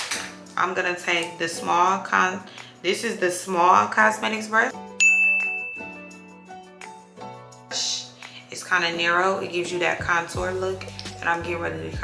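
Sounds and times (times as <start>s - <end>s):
soft background music: 0.0s - 12.0s
bright ding: 5.0s - 6.1s.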